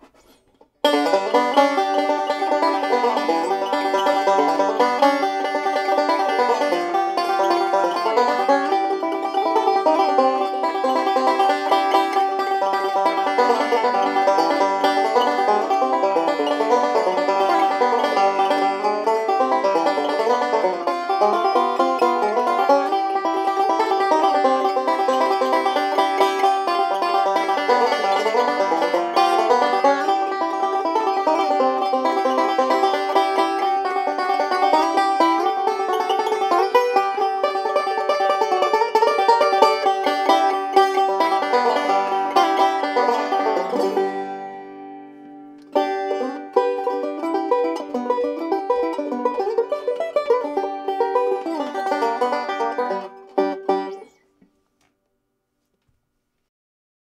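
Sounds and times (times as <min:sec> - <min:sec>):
banjo picking: 0:00.0 - 0:54.6.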